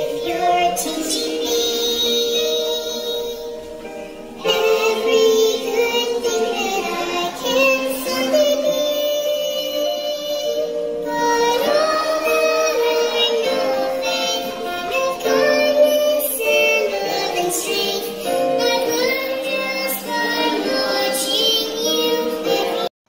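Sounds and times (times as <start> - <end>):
children and men singing: 4.4 - 22.9.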